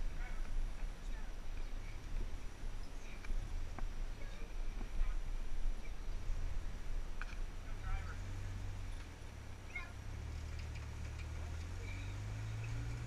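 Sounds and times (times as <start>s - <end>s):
distant truck engine running: 6.0s - 13.0s.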